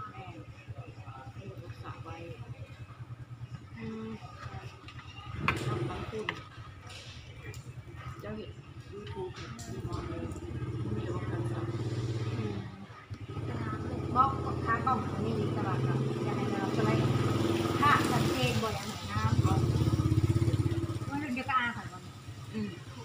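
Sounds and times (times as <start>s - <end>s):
motorcycle engine running: 0.0s - 23.0s.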